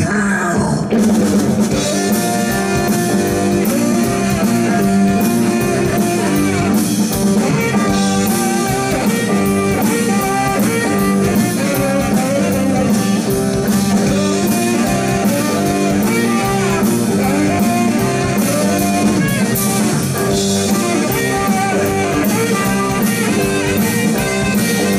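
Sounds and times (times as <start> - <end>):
bass guitar: 0.0 - 24.9
electric guitar: 0.0 - 24.9
drum kit steady beat: 0.9 - 24.9
tenor saxophone: 1.7 - 24.9.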